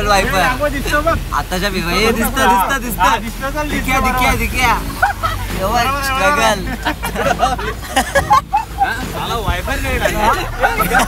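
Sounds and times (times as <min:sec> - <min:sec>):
car cabin rumble: 0:00.0 - 0:11.0
men talking: 0:00.0 - 0:11.0.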